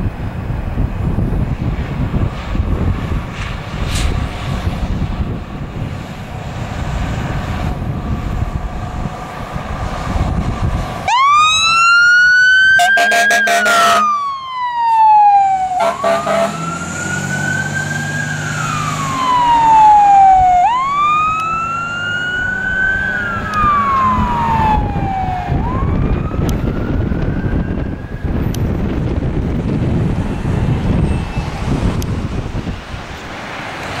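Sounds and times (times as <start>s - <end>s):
road and traffic noise: 0.0s - 34.0s
fire truck siren wailing: 6.5s - 34.0s.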